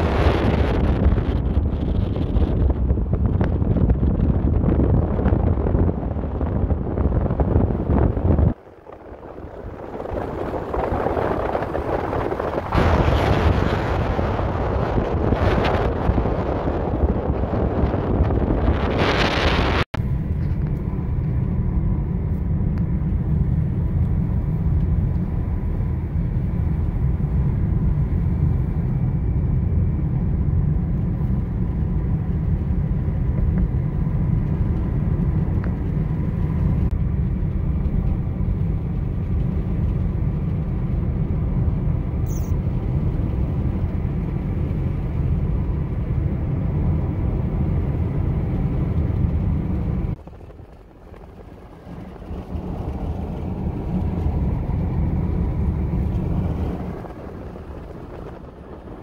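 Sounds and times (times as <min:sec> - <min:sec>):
road and engine rumble: 0:00.0 - 0:59.0
wind rushing over microphone: 0:00.0 - 0:59.0.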